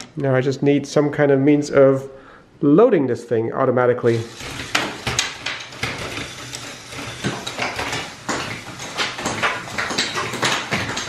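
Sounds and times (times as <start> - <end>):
plastic gears clattering: 4.1 - 11.0.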